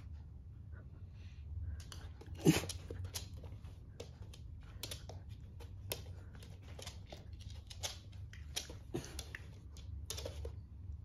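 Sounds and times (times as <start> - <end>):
claws clicking on floor: 1.8 - 10.6
dogs scuffling: 1.8 - 10.7.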